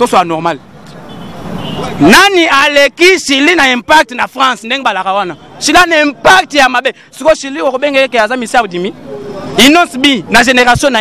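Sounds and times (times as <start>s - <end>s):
outdoor street background noise: 0.0s - 11.0s
man speaking: 2.0s - 11.0s.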